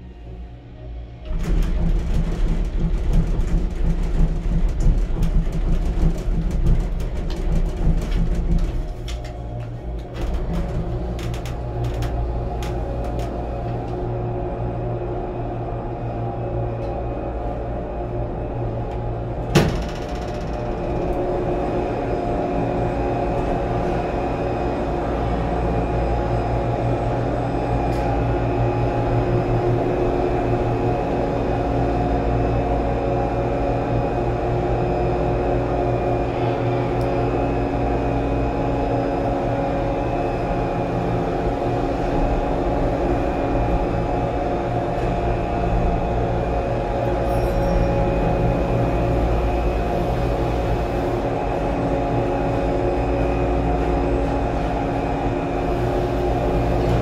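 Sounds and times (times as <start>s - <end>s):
gondola station machinery humming: 0.0s - 57.0s.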